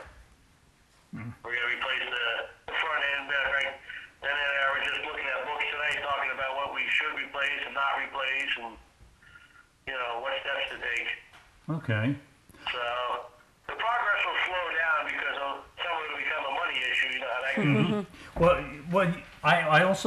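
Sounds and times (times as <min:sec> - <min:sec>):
person talking over telephone: 0:01.2 - 0:08.8, 0:09.9 - 0:19.8.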